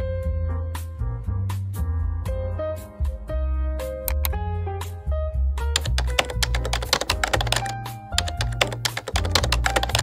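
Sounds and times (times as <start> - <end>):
background music with bass line: 0.0 - 10.0
computer keyboard typing clicks: 4.1 - 4.3, 5.8 - 10.0.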